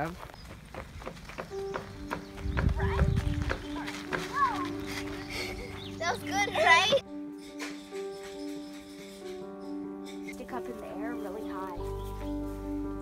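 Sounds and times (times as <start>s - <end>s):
background music with held notes: 1.3s - 13.0s.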